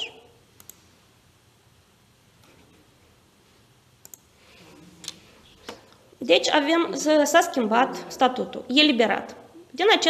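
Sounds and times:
computer mouse clicks: 0:00.6 - 0:00.8, 0:04.0 - 0:04.3.

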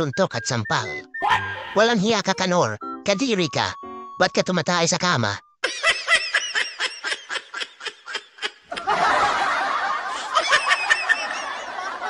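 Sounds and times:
group of people laughing: 0:05.6 - 0:12.0.

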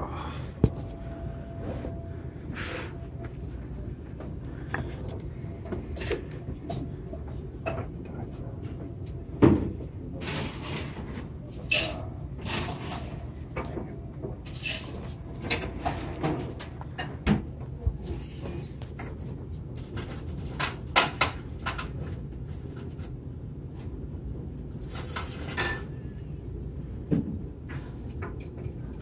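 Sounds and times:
low background murmur: 0:00.0 - 0:25.2.

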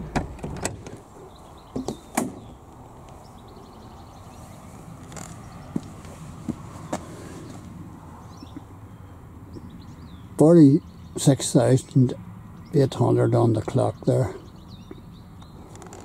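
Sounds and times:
car door latch clicking: 0:00.0 - 0:01.0.

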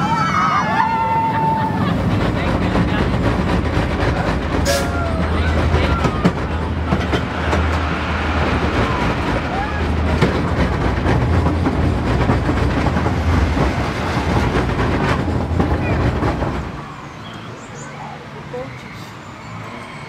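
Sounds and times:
roller coaster rumbling on wooden track: 0:00.0 - 0:20.0.

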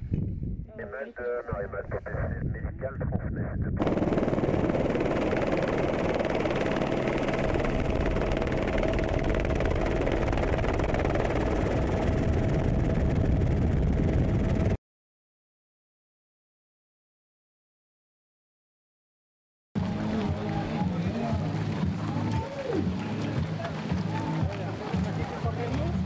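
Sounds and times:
person speaking: 0:00.7 - 0:03.7
helicopter engine and rotor: 0:03.8 - 0:14.8.

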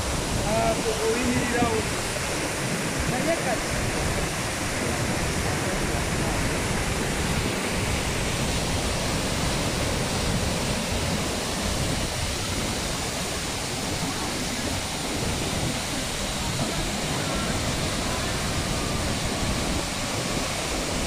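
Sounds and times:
waterfall rushing: 0:00.0 - 0:21.0.

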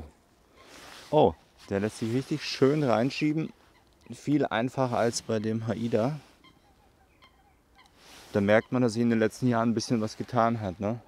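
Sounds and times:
faint bird chirps: 0:00.1 - 0:08.9
man speaking: 0:01.1 - 0:06.3, 0:08.4 - 0:11.0.

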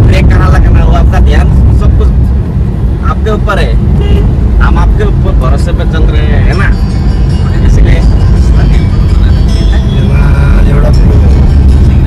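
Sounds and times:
people talking: 0:00.0 - 0:02.2, 0:03.0 - 0:11.6
car cabin rumble: 0:00.0 - 0:12.0.

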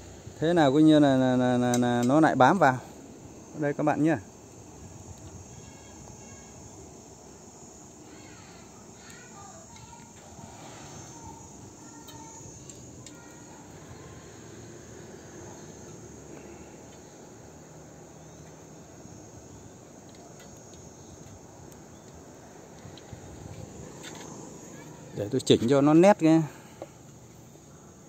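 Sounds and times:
insects trilling: 0:00.0 - 0:28.0
outdoor background noise: 0:00.0 - 0:28.0.

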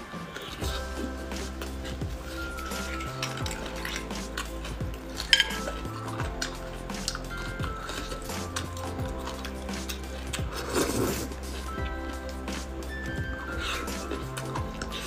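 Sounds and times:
background music: 0:00.0 - 0:15.0
bones and utensil clinking on plate: 0:00.7 - 0:11.8.

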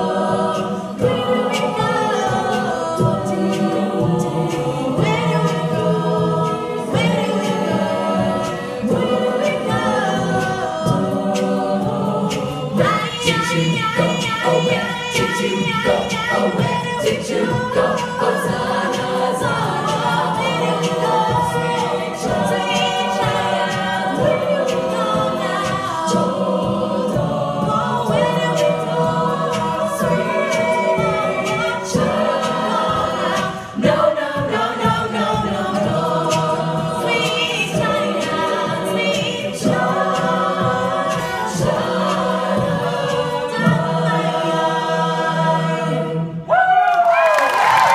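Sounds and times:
female a cappella group singing: 0:00.0 - 0:47.9.

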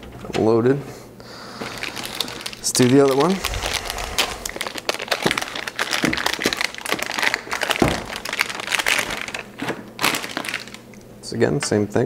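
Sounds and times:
plastic packaging crinkling: 0:01.5 - 0:11.0.

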